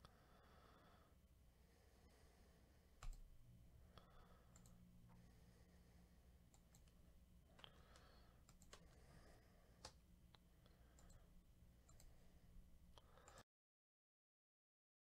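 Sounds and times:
faint scattered clicks: 3.0s - 3.3s, 4.0s - 5.2s, 6.5s - 9.1s, 9.8s - 12.2s, 12.9s - 13.4s.

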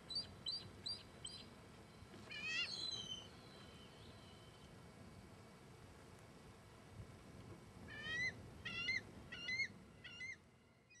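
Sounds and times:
eagle calling: 2.3s - 4.0s, 7.9s - 11.0s.

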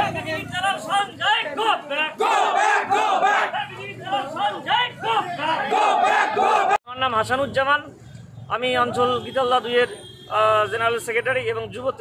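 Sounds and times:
crowd of men chanting: 2.2s - 3.8s, 5.0s - 6.8s.

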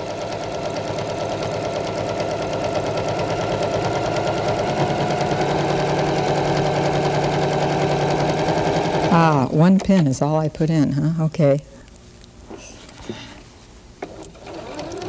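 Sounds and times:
sewing machine running: 0.0s - 9.5s, 14.0s - 15.0s.

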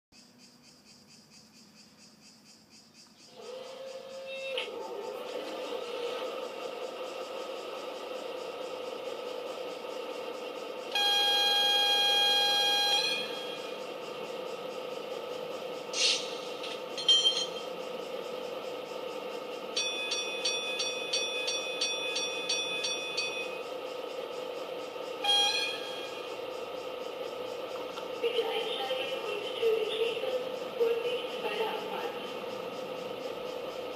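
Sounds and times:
locomotive horn blast: 10.9s - 13.8s, 25.2s - 26.1s
rapid ringing signal: 10.9s - 14.6s, 15.9s - 17.9s, 19.3s - 27.1s.

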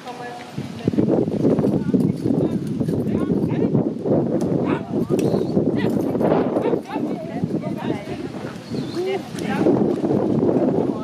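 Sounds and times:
voices calling: 4.5s - 11.0s.

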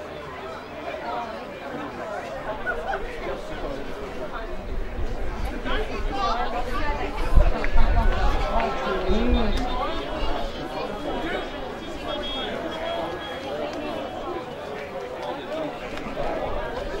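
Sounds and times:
spectators chattering and calling out: 0.0s - 17.0s.

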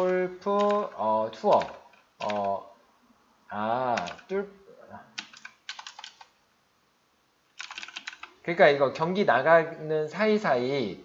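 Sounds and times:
typing on computer keyboard: 0.0s - 0.9s, 1.5s - 2.6s, 3.9s - 4.3s, 5.2s - 6.3s, 7.6s - 8.4s.

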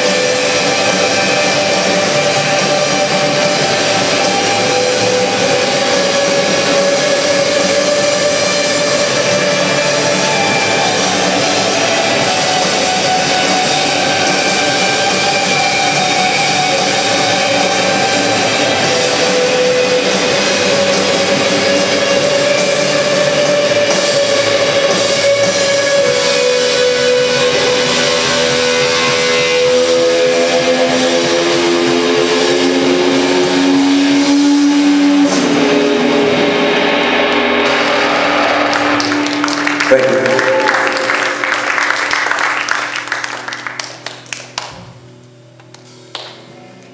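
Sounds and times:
drums: 0.0s - 46.9s
electric guitar noise: 0.0s - 46.9s.

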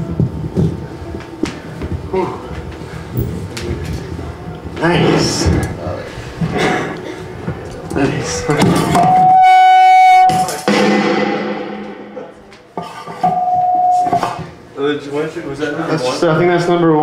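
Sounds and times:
stage noise: 8.0s - 12.7s
held instrument note: 8.2s - 12.5s.

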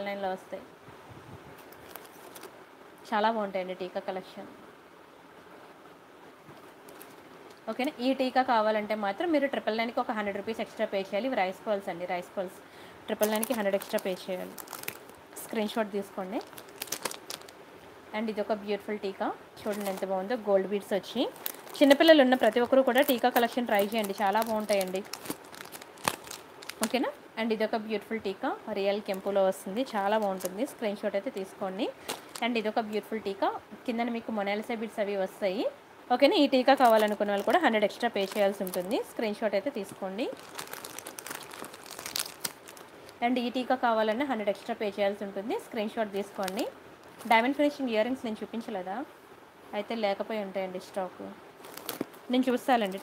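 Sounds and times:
packaging crinkling: 1.6s - 2.6s, 6.8s - 7.2s, 13.1s - 15.6s, 16.2s - 17.6s, 19.6s - 20.3s, 21.1s - 27.1s, 29.0s - 32.8s, 36.6s - 43.2s, 46.2s - 47.4s, 51.6s - 53.0s.

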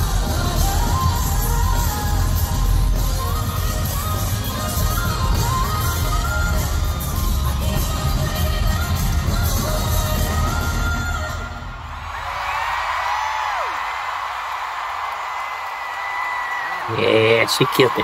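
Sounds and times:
live pop music with heavy bass: 0.0s - 12.0s
arena crowd cheering and screaming: 0.0s - 18.0s
high whoops: 12.0s - 18.0s.

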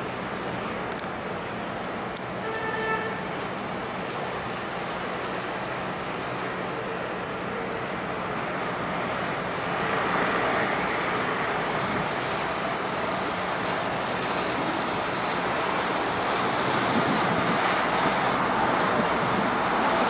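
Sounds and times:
street traffic: 0.0s - 20.0s.

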